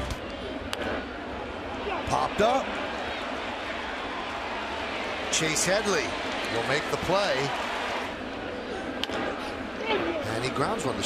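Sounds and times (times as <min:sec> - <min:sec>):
crowd murmur: 0:00.1 - 0:10.6.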